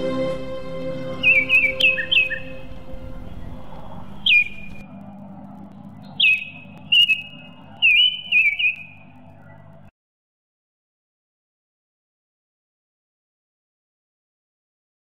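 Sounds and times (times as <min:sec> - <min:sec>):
background music: 0:00.0 - 0:04.8
small bird chirping: 0:03.7 - 0:04.9, 0:05.9 - 0:09.8.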